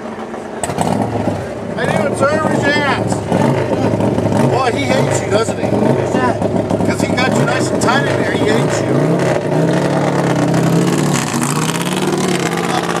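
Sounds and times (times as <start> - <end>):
race car engine idling: 0.0 - 13.0
voices: 1.3 - 9.2.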